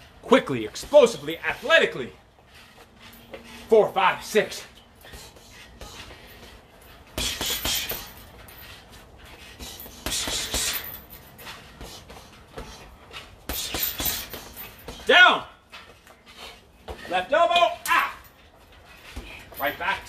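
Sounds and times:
hissed breaths: 2.2 - 15.0
quick punching strikes: 7.2 - 8.1.

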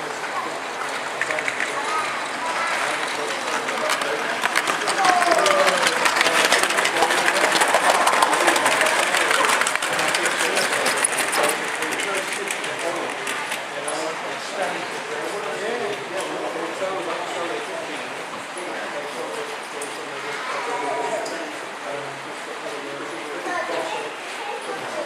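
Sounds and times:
model train wheels clicking on track: 0.0 - 17.6
murmur of voices: 0.0 - 25.0.

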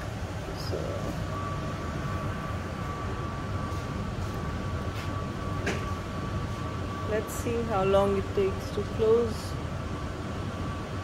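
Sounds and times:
train car hum and rumble: 0.0 - 11.0.

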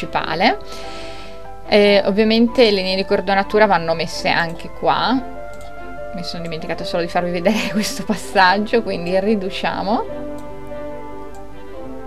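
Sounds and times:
background music with ticking beat: 0.2 - 12.0.

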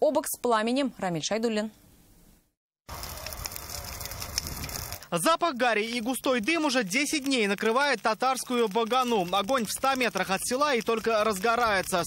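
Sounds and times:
open fire crackling and popping: 2.9 - 12.0.

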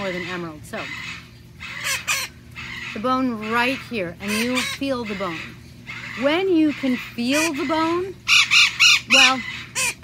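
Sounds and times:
parrot squawks: 0.0 - 10.0.

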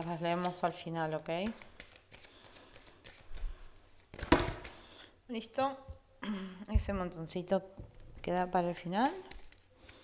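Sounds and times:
cards rustling: 0.0 - 4.8, 9.0 - 10.0.

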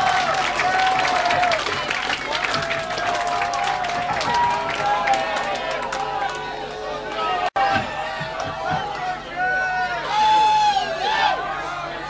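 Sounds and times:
scattered hand claps: 0.0 - 7.3, 8.2 - 9.2
crowd shouting: 0.0 - 12.0.

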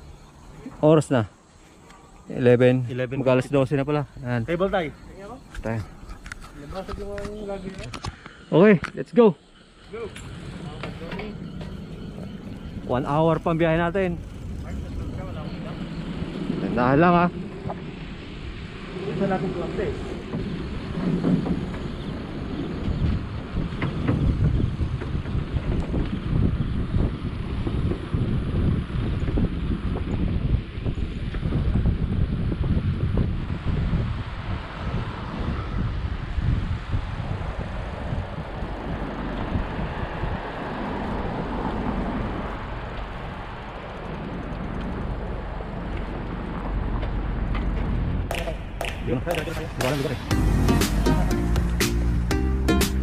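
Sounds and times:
wind buffeting microphone: 9.7 - 50.3.

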